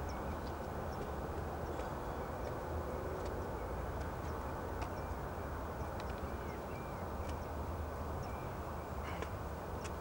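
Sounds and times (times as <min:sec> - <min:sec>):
low outdoor background noise: 0:00.0 - 0:10.0
small birds chirping: 0:00.0 - 0:10.0.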